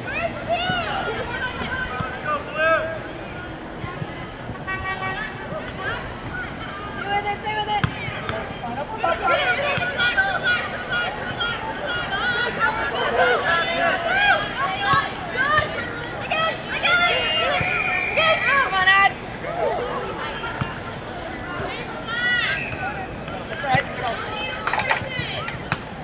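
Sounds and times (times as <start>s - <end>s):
players and spectators shouting: 0.0s - 26.0s.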